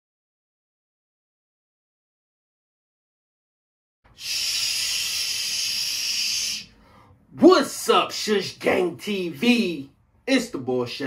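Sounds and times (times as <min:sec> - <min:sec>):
man shushing: 0:04.1 - 0:07.0.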